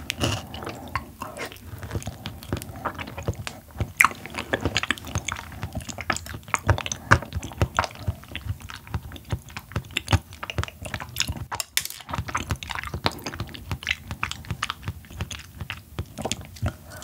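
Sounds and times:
wet chewing mouth clicks: 0.0s - 17.0s.

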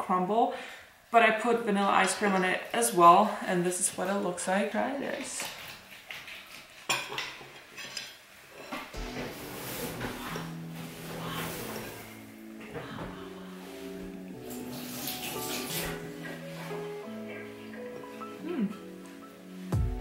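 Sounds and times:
background music sustained notes: 9.0s - 20.0s.

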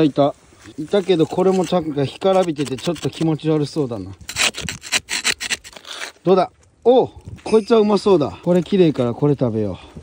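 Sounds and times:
metal tool scraping rock: 0.8s - 6.3s.

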